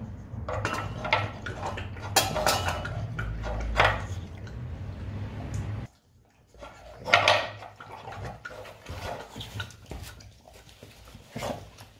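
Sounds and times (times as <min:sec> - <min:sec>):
dog lapping from a bowl: 0:00.5 - 0:04.9, 0:05.9 - 0:11.9.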